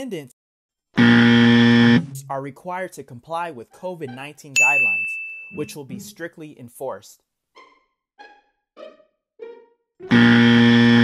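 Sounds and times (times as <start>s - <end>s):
wrong answer buzzer: 1.0s - 2.4s, 10.1s - 11.0s
soft plucked notes: 1.9s - 2.6s.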